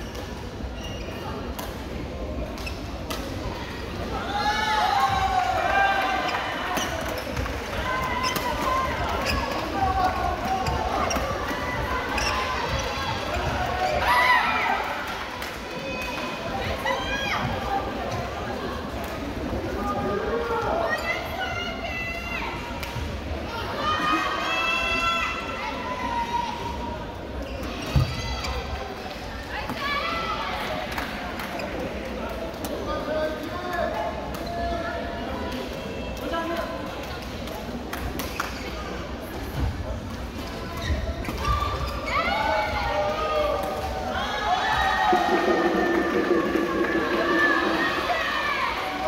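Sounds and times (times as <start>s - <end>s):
voices and calls echoing: 41.4s - 49.0s.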